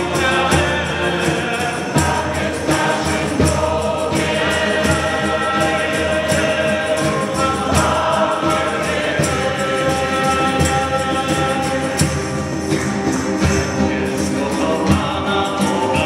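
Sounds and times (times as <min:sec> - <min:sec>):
choir singing a hymn: 0:00.0 - 0:16.0
steady percussion beat: 0:00.0 - 0:16.0.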